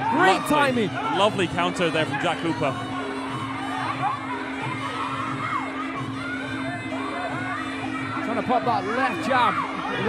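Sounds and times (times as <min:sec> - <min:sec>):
background music: 0:00.0 - 0:10.0
crowd shouting and cheering: 0:00.0 - 0:10.0.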